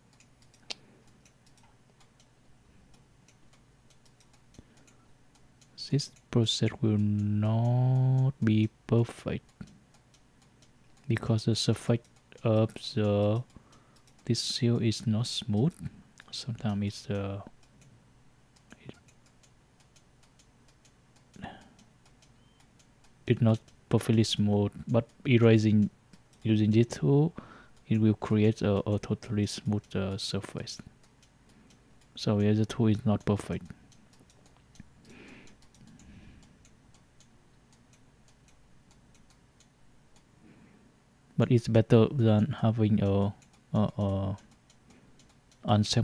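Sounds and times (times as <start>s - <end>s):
faint ticking: 0.0s - 46.0s.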